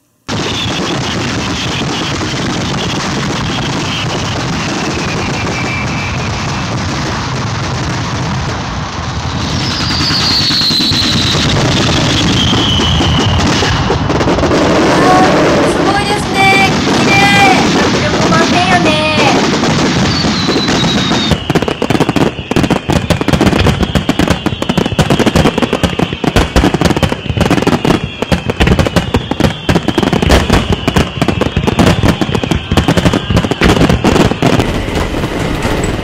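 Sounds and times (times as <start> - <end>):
fireworks crackling and rumbling: 0.0 - 36.0
fireworks whistling: 0.0 - 36.0
person speaking: 14.9 - 19.4.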